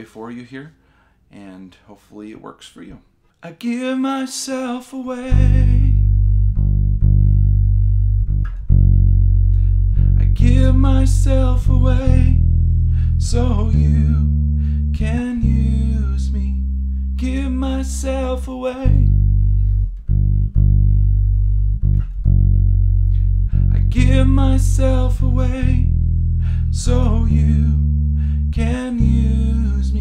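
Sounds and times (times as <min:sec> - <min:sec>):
electric bass guitar notes: 0:05.2 - 0:30.0.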